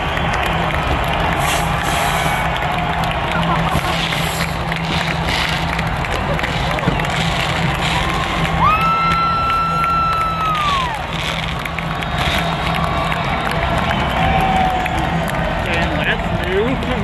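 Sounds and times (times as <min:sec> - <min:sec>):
stadium crowd cheering: 0:00.0 - 0:17.0.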